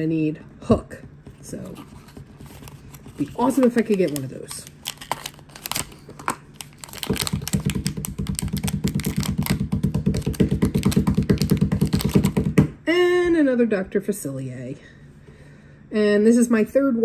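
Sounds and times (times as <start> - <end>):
packaging handled: 1.6 - 12.6
foil pouch tearing: 2.8 - 9.6.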